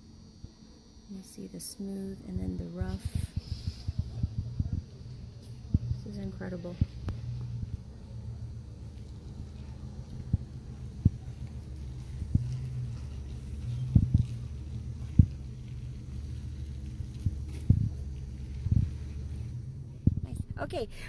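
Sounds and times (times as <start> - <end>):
low handling rumble: 0.1 - 21.0.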